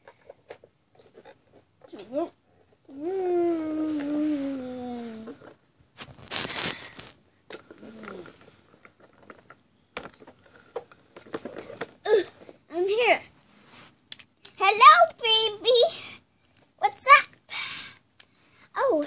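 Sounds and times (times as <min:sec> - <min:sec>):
girl's rising vocal sounds: 0:02.9 - 0:05.4
handling noises: 0:05.9 - 0:12.6.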